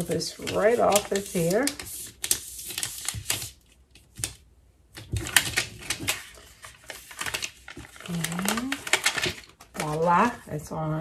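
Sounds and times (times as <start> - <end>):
contact paper peeling with crackles: 0.0 - 4.4, 5.0 - 10.4.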